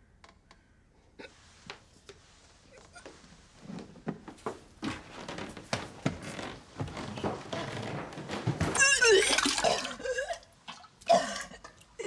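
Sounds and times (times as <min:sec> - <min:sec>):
woman retching and vomiting: 0:08.6 - 0:12.0
liquid splashing into toilet bowl: 0:09.2 - 0:12.0.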